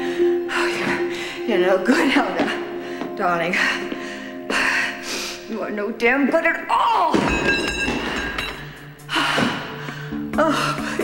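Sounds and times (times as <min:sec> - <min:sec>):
metal scraping and ringing: 0:07.2 - 0:08.9.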